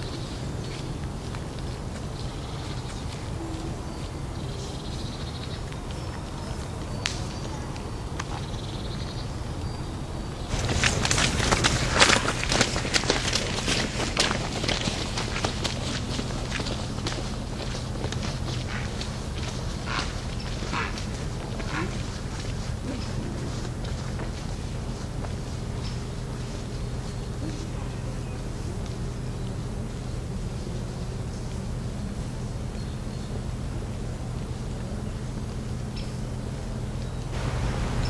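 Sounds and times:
footsteps crunching on gravel: 0:00.0 - 0:09.0, 0:10.4 - 0:31.7, 0:37.0 - 0:38.0.

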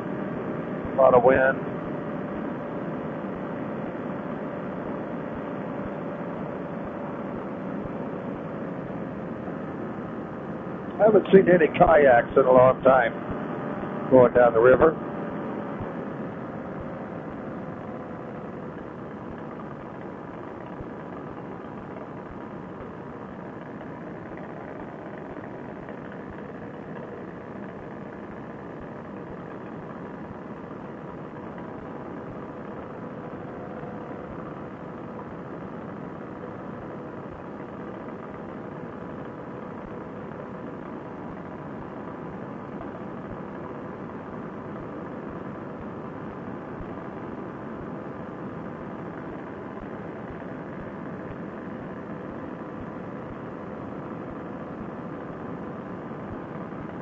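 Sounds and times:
paramotor engine drone: 0:00.0 - 0:57.0.

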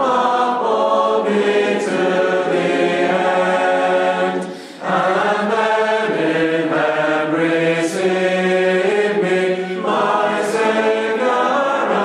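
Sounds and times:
group singing a slow hymn: 0:00.0 - 0:12.0.

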